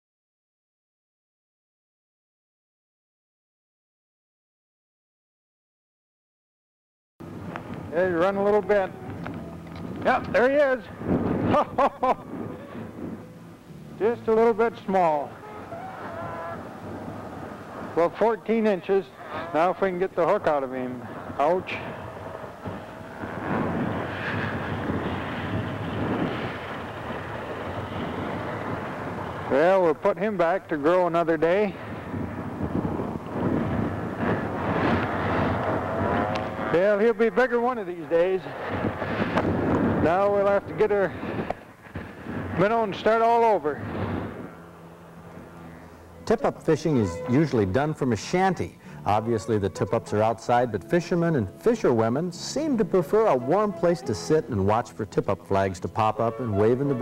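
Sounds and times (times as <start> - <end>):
wind rushing on microphone: 7.2 - 57.0
faint vocal hum: 19.1 - 19.8, 48.8 - 51.6.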